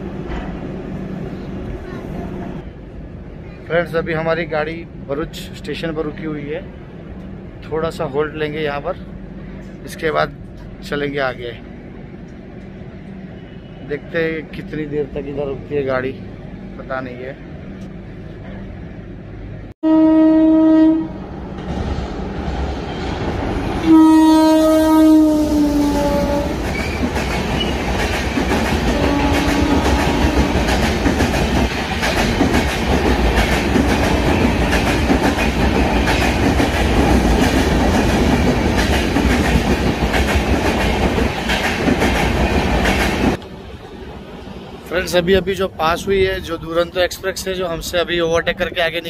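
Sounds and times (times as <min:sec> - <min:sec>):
train horn: 0:19.8 - 0:21.2, 0:23.8 - 0:26.6, 0:28.9 - 0:30.7
train coaches rushing by: 0:21.2 - 0:49.0.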